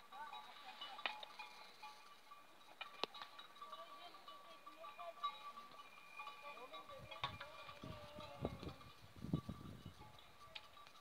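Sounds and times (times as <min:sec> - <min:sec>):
faint bells ringing: 0:00.0 - 0:11.0.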